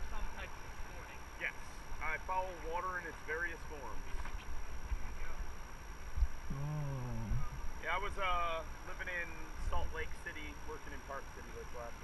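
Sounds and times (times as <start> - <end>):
steady low rumble: 4.6 - 8.3.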